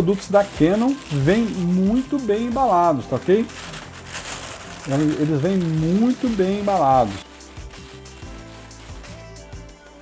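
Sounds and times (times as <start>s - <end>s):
plastic bag crinkling: 0.0s - 9.3s
quiet background music: 0.0s - 10.0s.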